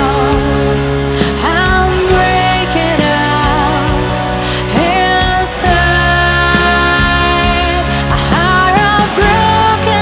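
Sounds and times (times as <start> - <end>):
rock band playing instrumental: 0.0 - 10.0.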